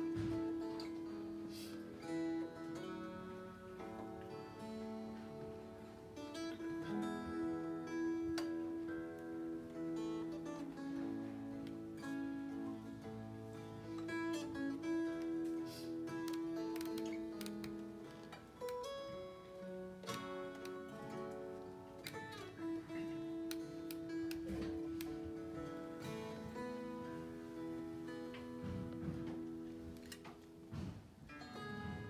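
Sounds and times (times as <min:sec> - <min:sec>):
acoustic guitar plucked notes: 0:00.0 - 0:32.0
mountain dulcimer: 0:00.0 - 0:32.0.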